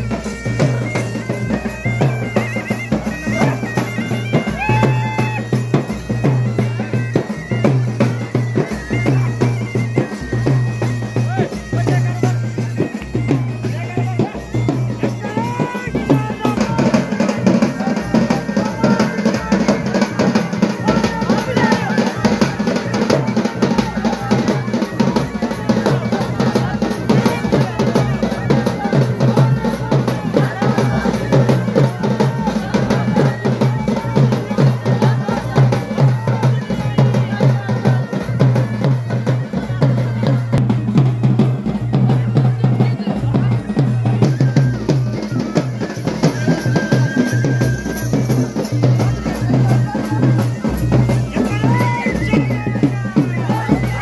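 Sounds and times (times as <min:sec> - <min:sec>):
drums in processional rhythm: 0:00.0 - 0:54.0.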